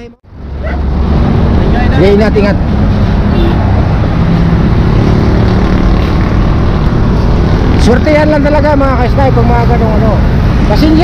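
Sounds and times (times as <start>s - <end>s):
road traffic noise: 0.0s - 11.0s.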